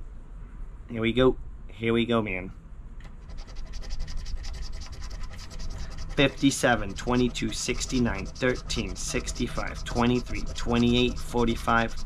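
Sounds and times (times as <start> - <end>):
chip scraping lottery ticket: 3.1 - 12.0.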